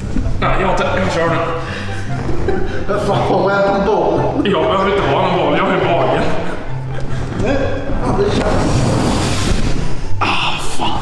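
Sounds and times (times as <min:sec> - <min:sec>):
background music with bass line: 0:00.0 - 0:11.0
man talking: 0:02.8 - 0:06.7.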